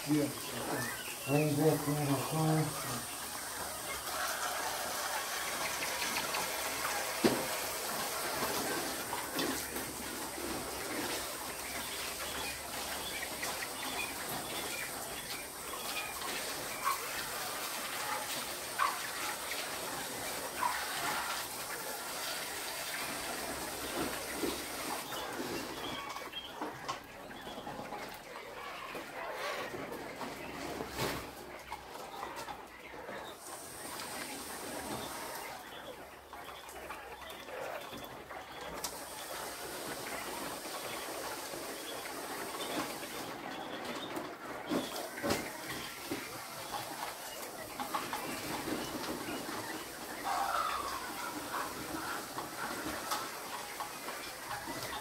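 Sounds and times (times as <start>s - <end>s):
quail chirping and calling: 0.0s - 55.0s
steady high hiss: 33.4s - 35.7s.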